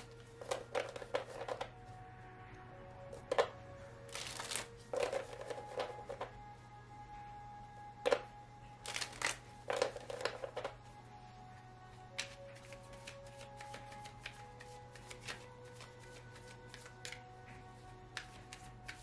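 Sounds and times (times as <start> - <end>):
cards being shuffled: 0.0 - 1.8, 3.1 - 6.4, 8.0 - 10.9, 12.1 - 17.3, 18.1 - 19.0
soft background music: 0.0 - 19.0.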